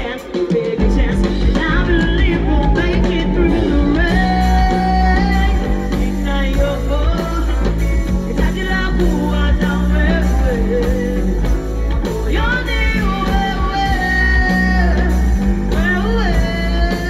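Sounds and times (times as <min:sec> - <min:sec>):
live band with guitar and bass: 0:00.0 - 0:17.0
woman singing into a microphone: 0:00.0 - 0:17.0.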